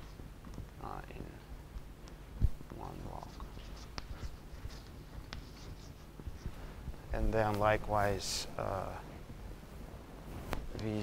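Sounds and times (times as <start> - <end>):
chalk tapping on blackboard: 2.1 - 6.6
chalk scratching on blackboard: 2.7 - 6.6.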